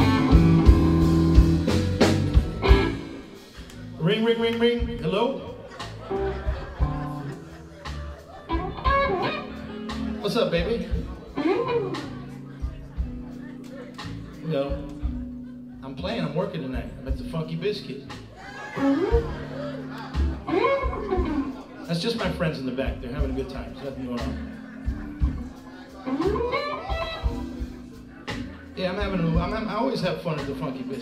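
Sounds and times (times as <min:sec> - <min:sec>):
electric guitar notes: 0:00.0 - 0:04.0, 0:05.9 - 0:15.8, 0:17.9 - 0:21.9, 0:24.4 - 0:29.7
live blues rock band: 0:00.0 - 0:31.0.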